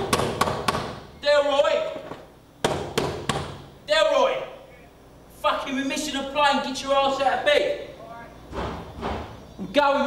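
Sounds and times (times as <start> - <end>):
fist knocking on door: 0.0 - 1.0, 2.6 - 3.6
man shouting: 1.2 - 2.0, 3.9 - 4.7.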